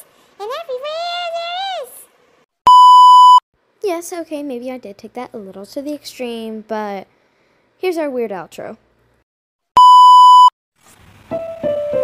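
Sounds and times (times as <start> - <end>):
loud electronic beep: 2.7 - 3.4, 9.8 - 10.5.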